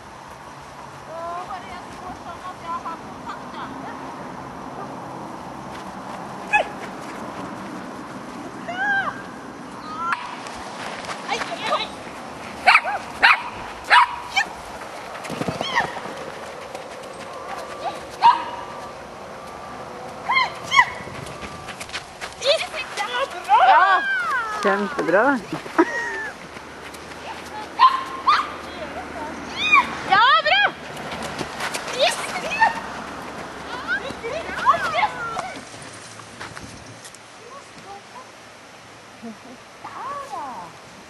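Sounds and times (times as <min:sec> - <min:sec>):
dog barking and yipping: 0:06.5 - 0:06.8, 0:12.6 - 0:14.6, 0:17.4 - 0:18.9, 0:20.3 - 0:21.1, 0:27.8 - 0:28.6.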